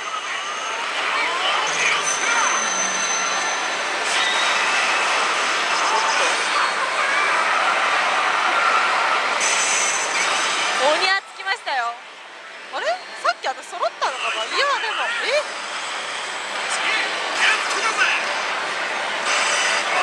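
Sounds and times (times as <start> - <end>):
gaming hall din: 0.0 - 20.0.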